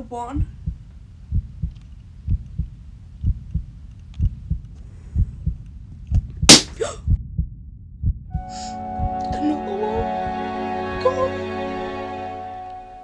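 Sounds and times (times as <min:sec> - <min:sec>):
heartbeat thumps: 0:00.4 - 0:10.2.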